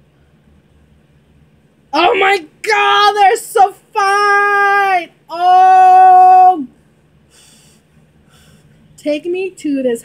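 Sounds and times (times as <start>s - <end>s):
woman breathing soft puffs: 7.3s - 8.8s.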